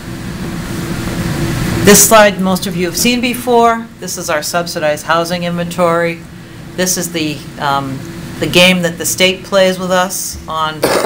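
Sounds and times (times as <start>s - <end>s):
faint steady hum: 0.0s - 11.0s
woman speaking: 1.8s - 6.2s, 6.8s - 11.0s.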